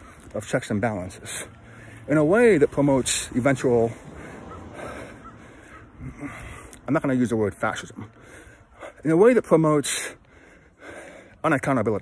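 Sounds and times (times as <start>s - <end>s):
faint bird calls: 4.2s - 6.6s.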